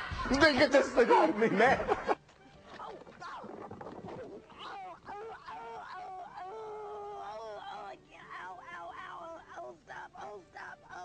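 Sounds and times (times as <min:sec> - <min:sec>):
woman moaning and wailing: 0:04.5 - 0:11.0.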